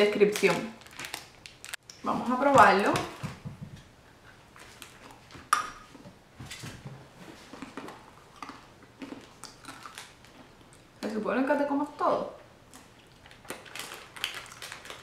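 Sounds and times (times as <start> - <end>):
peanuts being chewed: 7.5 - 11.1, 12.7 - 15.0.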